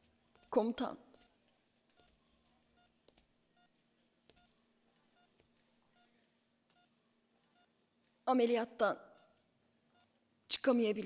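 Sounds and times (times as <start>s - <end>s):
heart monitor beeping: 0.0s - 8.0s, 8.9s - 10.3s.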